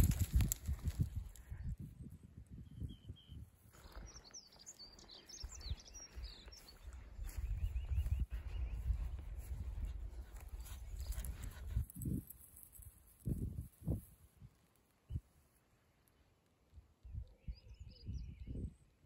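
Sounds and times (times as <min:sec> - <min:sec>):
wind rumble on microphone: 0:00.0 - 0:04.3, 0:05.0 - 0:15.3, 0:16.8 - 0:19.0
small bird chirping: 0:02.5 - 0:13.4.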